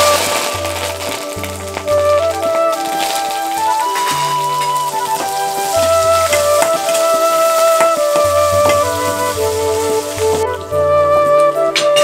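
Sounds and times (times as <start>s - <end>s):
onion sizzling in hot oil: 0.0s - 10.9s
flute music: 0.0s - 12.0s.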